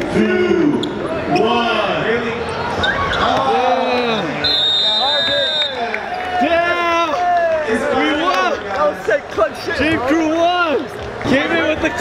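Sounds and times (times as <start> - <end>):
people shouting and cheering: 0.1 - 12.0
high steady whistle: 4.4 - 5.8.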